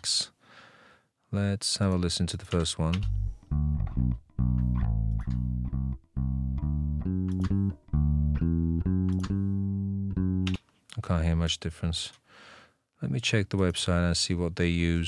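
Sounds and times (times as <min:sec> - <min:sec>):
bass guitar plucked notes: 0:02.6 - 0:10.6.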